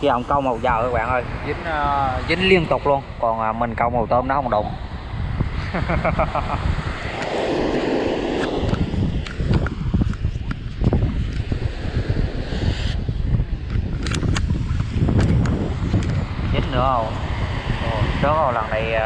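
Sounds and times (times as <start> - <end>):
wind buffeting microphone: 0.0 - 19.0
small waves washing on beach: 4.5 - 14.2
sharp clicks: 13.7 - 14.5.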